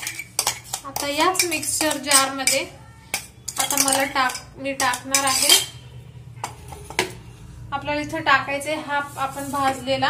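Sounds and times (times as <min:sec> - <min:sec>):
metal spoon clinking on steel jar: 0:00.0 - 0:05.8.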